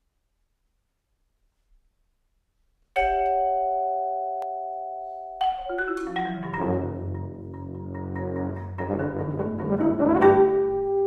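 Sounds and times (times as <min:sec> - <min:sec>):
vibraphone chord ringing: 0:03.0 - 0:08.7.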